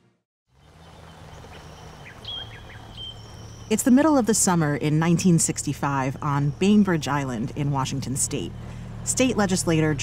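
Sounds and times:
bird chirps: 0.6 - 4.0
low background hum: 0.6 - 10.0.

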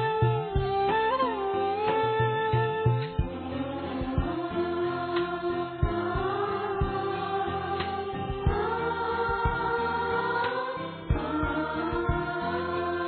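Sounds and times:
drum beats: 0.0 - 12.7
choir singing long held notes: 0.0 - 13.0
instrumental accompaniment: 0.0 - 13.0.

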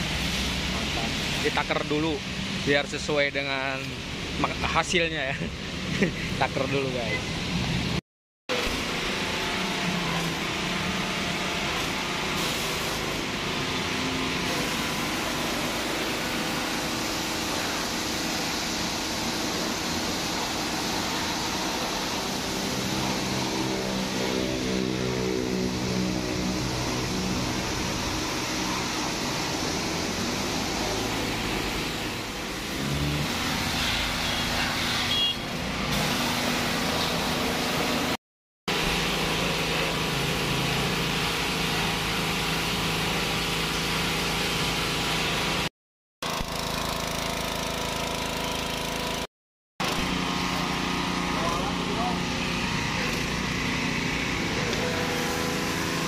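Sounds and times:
pressure washer pump humming: 0.0 - 4.6, 8.5 - 56.0
high-pressure water jet hissing: 0.0 - 7.9, 8.5 - 56.0.

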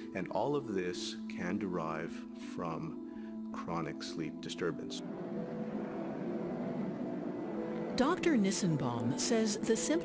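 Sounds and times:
faint steady tones: 0.0 - 10.0
wind turbine running: 4.4 - 10.0.

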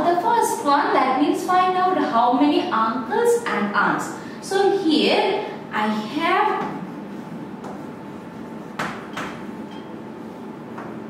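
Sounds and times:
chalk tapping and scraping: 6.5 - 11.0.

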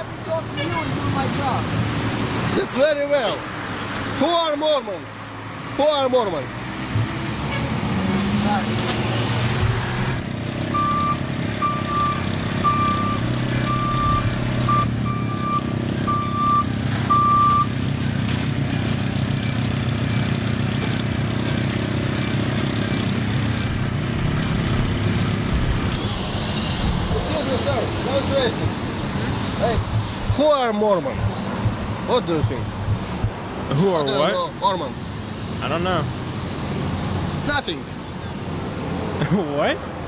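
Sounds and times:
diesel engine running: 6.8 - 33.7
reversing alarm beeps: 10.8 - 17.7.

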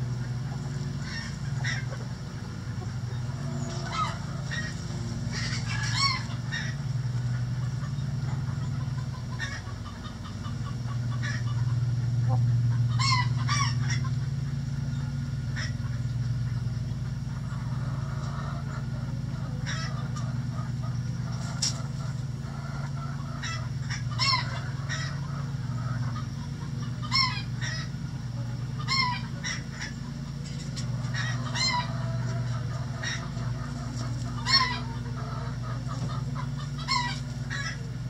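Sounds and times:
chickens calling: 0.0 - 38.0
steady low hum: 0.0 - 38.0.

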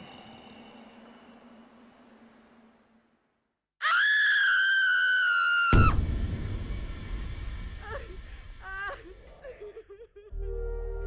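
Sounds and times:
high-pitched scream: 3.8 - 6.0.

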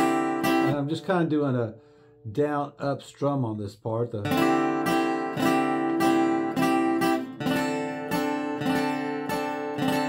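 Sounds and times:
acoustic guitar strumming: 0.0 - 2.6, 4.2 - 10.0.

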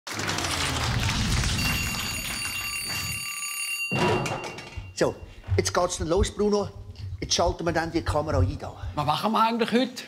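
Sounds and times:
alarm clock bell ringing: 1.6 - 5.1.

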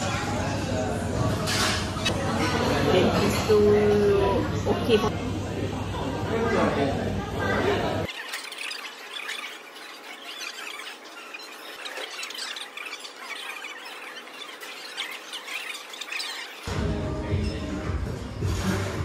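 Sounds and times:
high-pitched voices chattering: 6.5 - 16.7.

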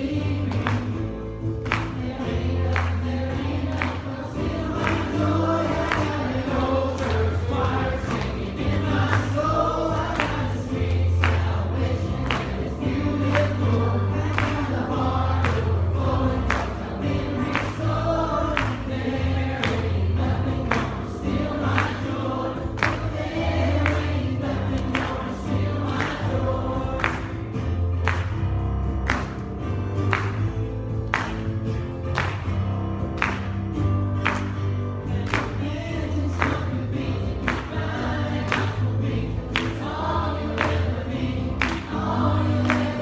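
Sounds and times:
youth choir singing: 0.0 - 1.1, 1.7 - 27.6, 35.0 - 43.0
bass and steady beat: 0.0 - 43.0.

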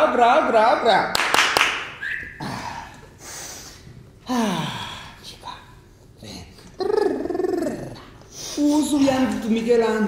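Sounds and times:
man gasping: 2.4 - 5.2
breathy hiss: 2.4 - 5.8, 8.2 - 8.8.

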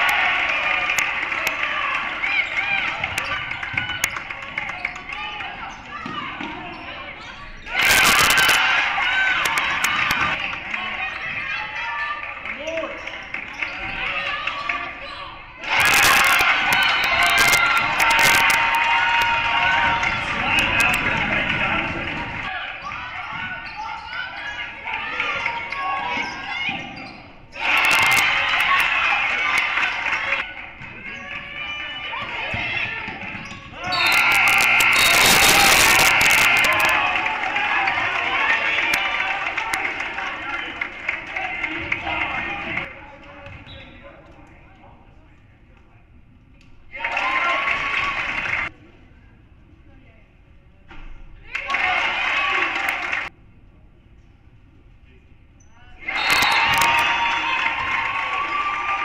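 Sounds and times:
crowd noise surging: 0.0 - 4.9, 7.7 - 12.0, 15.6 - 22.6, 27.5 - 33.0, 33.8 - 42.9, 56.0 - 59.0
voices from court and stands: 0.0 - 59.0.

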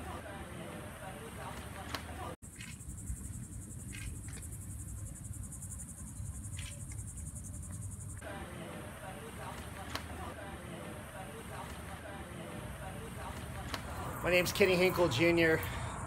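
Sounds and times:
faint voices: 0.0 - 2.4, 8.2 - 15.8
insects trilling: 2.4 - 8.2.

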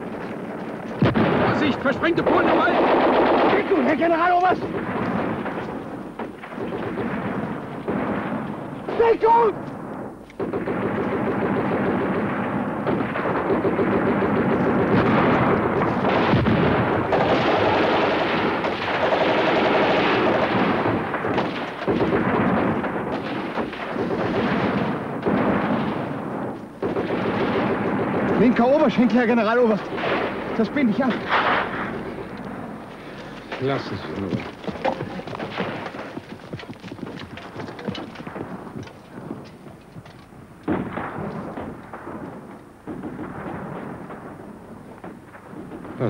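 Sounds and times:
heavy detonations: 0.0 - 46.0
rifle and machine-gun fire: 0.0 - 46.0.

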